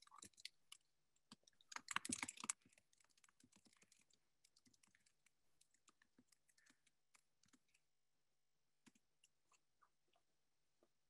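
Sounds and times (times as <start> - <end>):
faint clicking and tapping: 0.0 - 7.9, 8.8 - 11.0.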